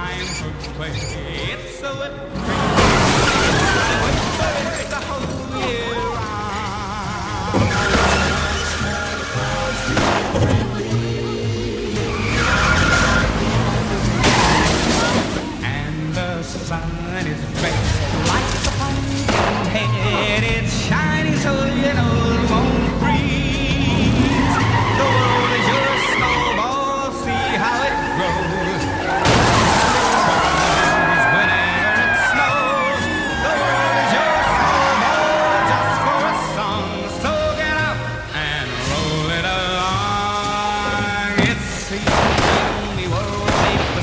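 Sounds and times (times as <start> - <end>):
song playing: 0.0 - 14.3, 15.3 - 44.0
car tyres squealing on asphalt: 2.4 - 10.7, 11.9 - 15.7, 19.6 - 42.1.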